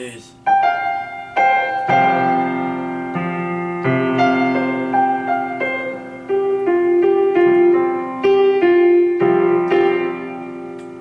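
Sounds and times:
held keyboard piano chord: 0.0 - 11.0.

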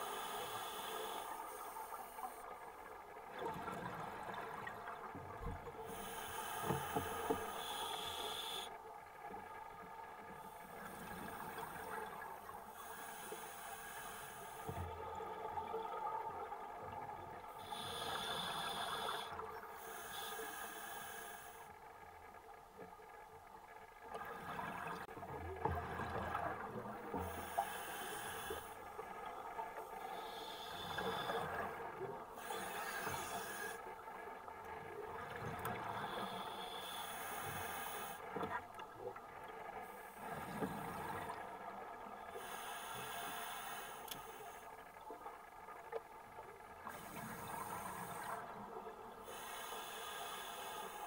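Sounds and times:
hissing regulator inhalations: 0.0 - 2.4, 5.9 - 8.8, 12.6 - 14.9, 17.6 - 21.8, 27.1 - 28.9, 30.0 - 33.9, 35.8 - 38.3, 42.3 - 44.7, 49.2 - 51.0
underwater bubbling and rumble: 0.0 - 51.0.

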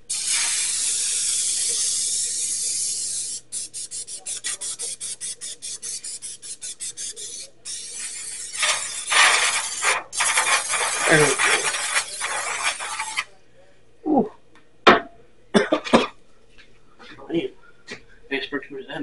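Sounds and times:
aerosol spray can spraying: 0.1 - 13.3.

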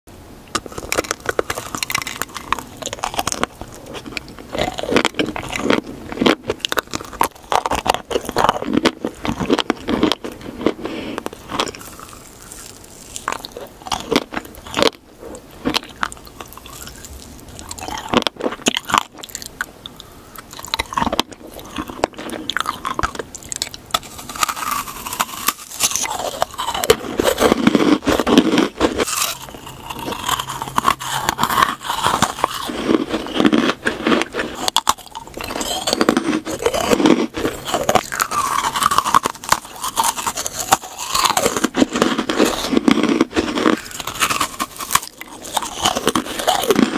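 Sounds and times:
chewing crunchy cake pop: 0.5 - 46.9
wet mouth sounds: 0.5 - 46.9.

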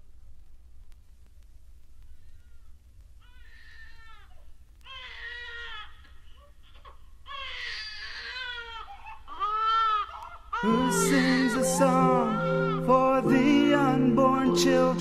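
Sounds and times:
infant crying: 3.3 - 13.0.

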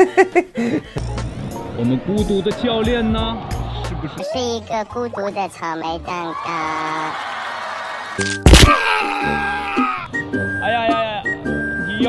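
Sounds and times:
background music: 0.0 - 12.0
man crying out in pain: 8.5 - 10.1.

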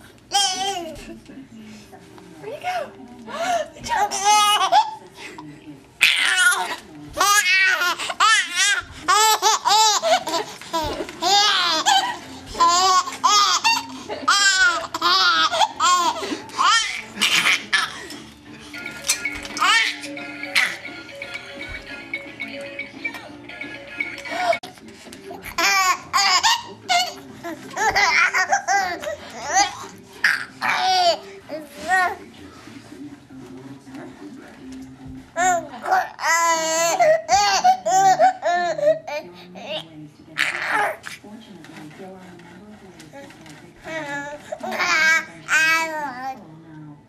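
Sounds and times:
baby laughing: 3.9 - 5.0, 6.0 - 18.2, 19.0 - 20.9, 25.4 - 32.2, 35.4 - 39.2.

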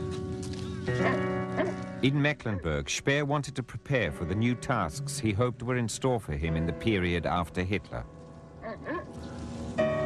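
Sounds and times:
sustained keyboard music: 0.0 - 10.0
dog barking: 1.0 - 1.8, 8.6 - 9.1.

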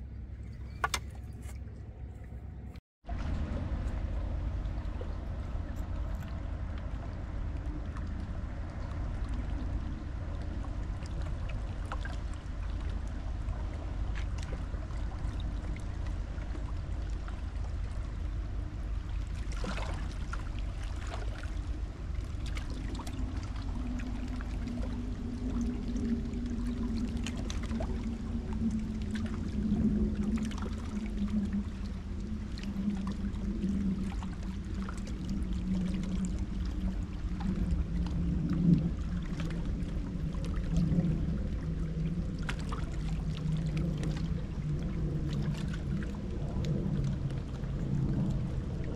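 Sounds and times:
boat engine drone: 0.0 - 48.9
steady low rumble: 0.0 - 48.9
water lapping and splashing: 0.0 - 48.9.

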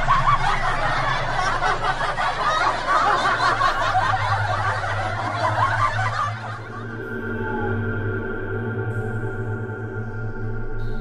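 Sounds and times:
snickering laughter: 0.0 - 7.0
ambient music drone: 0.0 - 11.0
low hum: 0.0 - 11.0.

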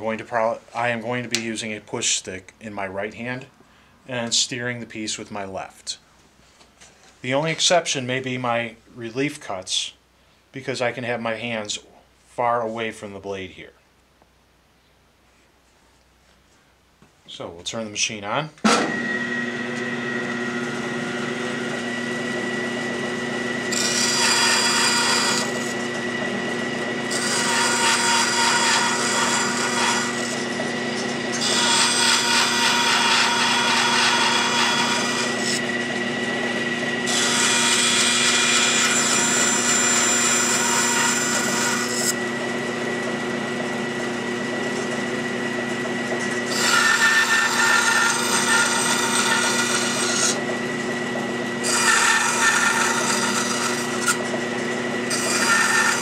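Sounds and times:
bandsaw humming: 18.6 - 56.0
bandsaw cutting wood: 18.7 - 56.0.

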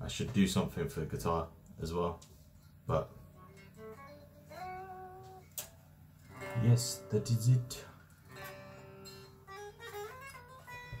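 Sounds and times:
electric guitar notes: 3.0 - 11.0.

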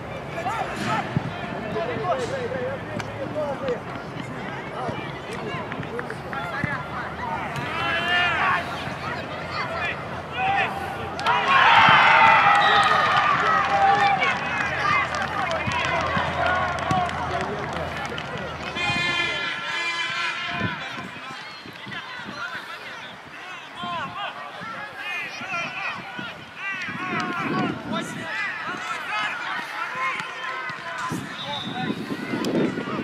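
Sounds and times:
people shouting outdoors: 7.2 - 17.0, 22.0 - 33.0.

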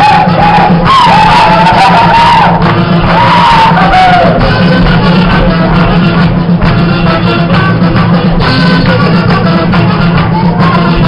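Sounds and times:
people shouting: 0.0 - 4.5
live folk dance music: 0.0 - 11.0.

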